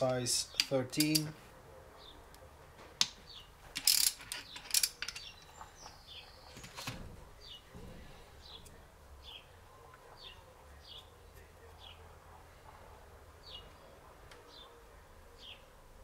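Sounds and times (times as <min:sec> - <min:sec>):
bird chirping: 0:03.2 - 0:03.6, 0:04.4 - 0:12.6, 0:13.4 - 0:15.8
ratchet wrench clicking: 0:03.8 - 0:05.3.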